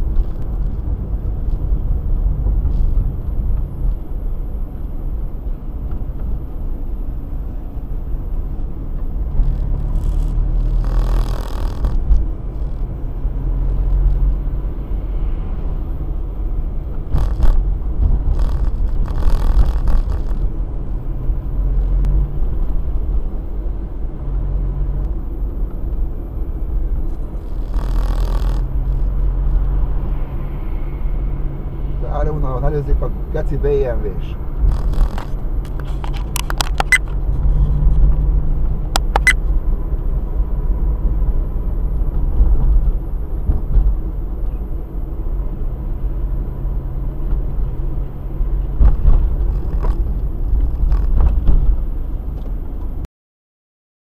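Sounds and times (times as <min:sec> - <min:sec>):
car engine and road rumble: 0:00.0 - 0:53.1.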